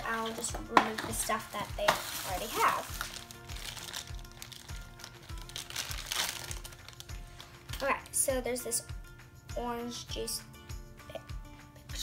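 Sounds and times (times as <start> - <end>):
background music with steady beat: 0.0 - 12.0
plastic wrapping crinkling: 0.1 - 8.2.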